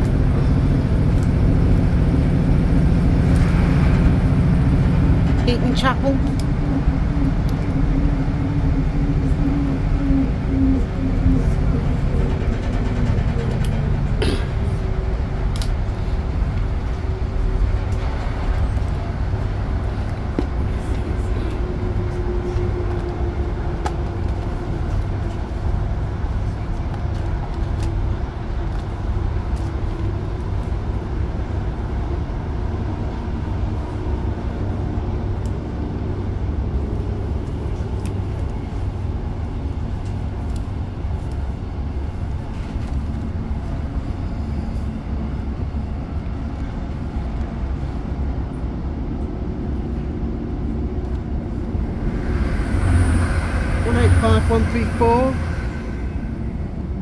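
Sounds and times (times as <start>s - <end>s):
passing train rush: 0.0s - 57.0s
train diesel engine rumble: 0.0s - 57.0s
train wheels on rails: 0.0s - 57.0s.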